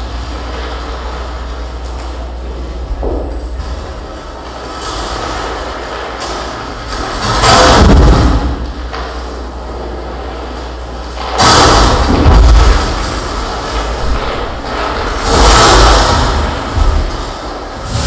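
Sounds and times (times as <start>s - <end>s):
rumbling harsh noise: 0.0s - 18.0s.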